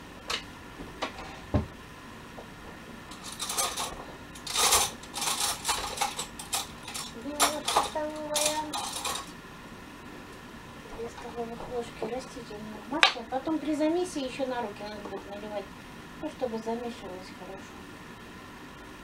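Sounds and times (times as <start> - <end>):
dishes and utensils clinking: 3.1 - 9.3.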